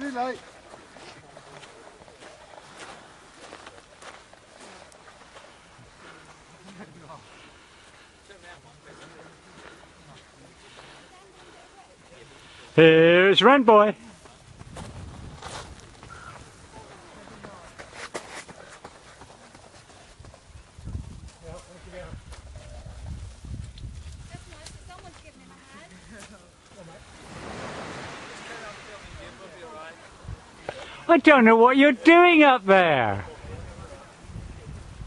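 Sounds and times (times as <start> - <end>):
wind rumble on microphone: 14.4 - 16.8, 20.2 - 25.3, 33.2 - 35.0
distant voices: 26.5 - 31.1.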